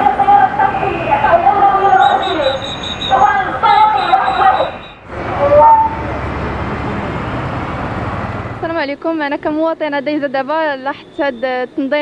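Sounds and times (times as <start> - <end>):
street traffic noise: 0.0 - 12.0
car horn toot rising in pitch: 1.8 - 6.1.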